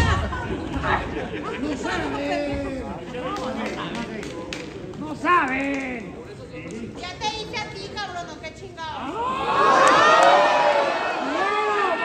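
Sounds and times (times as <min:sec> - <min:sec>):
crowd chatter and calls: 0:00.0 - 0:12.0.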